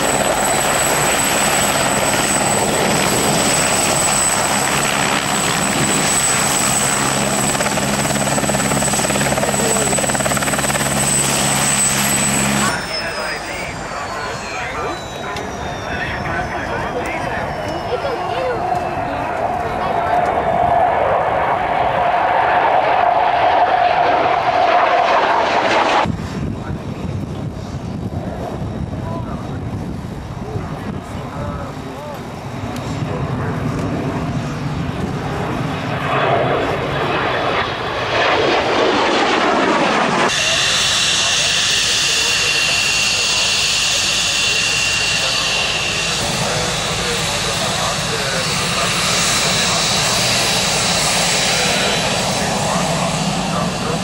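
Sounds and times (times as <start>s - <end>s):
high-pitched jet whine: 0.0s - 54.0s
jet passing by roaring: 0.0s - 54.0s.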